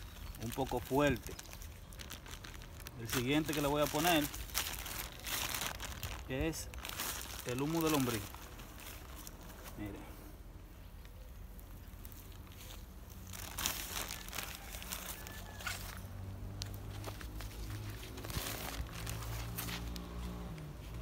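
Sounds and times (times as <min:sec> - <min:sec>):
humus pouring onto soil: 0:00.0 - 0:10.0
plastic bag crinkling: 0:00.0 - 0:10.1, 0:11.4 - 0:21.0.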